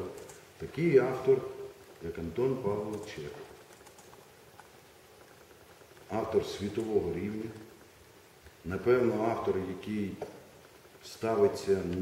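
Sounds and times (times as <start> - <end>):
man speaking: 0.0 - 3.6, 6.1 - 7.7, 8.6 - 10.3, 11.0 - 12.0
faint clicks: 2.9 - 6.9.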